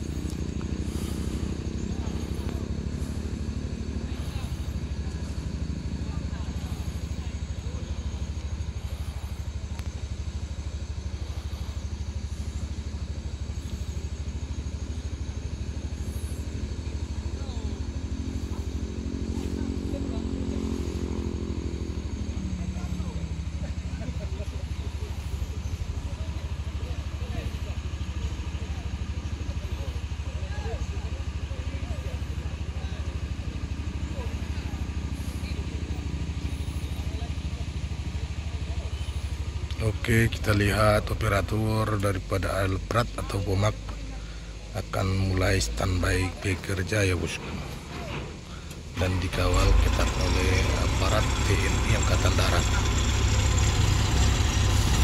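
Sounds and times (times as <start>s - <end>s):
steady low hum: 0.0s - 55.0s
vehicle engine running: 0.0s - 55.0s.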